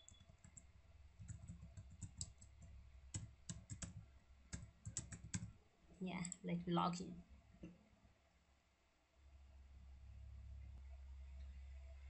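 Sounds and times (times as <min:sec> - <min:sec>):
typing on computer keyboard: 0:00.0 - 0:05.5.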